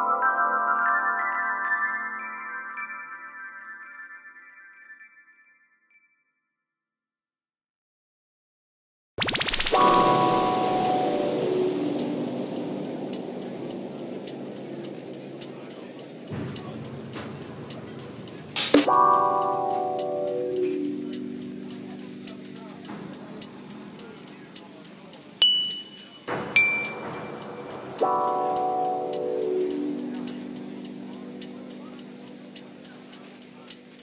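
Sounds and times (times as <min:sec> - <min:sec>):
sharp ticks: 0:09.2 - 0:18.9, 0:21.1 - 0:28.4.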